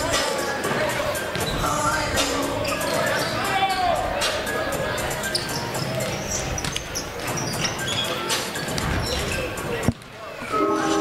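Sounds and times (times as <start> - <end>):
music with held notes: 0.0 - 11.0.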